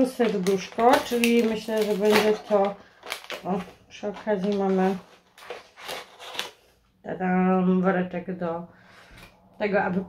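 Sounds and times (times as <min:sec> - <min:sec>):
paper packaging rustling: 0:00.0 - 0:06.8.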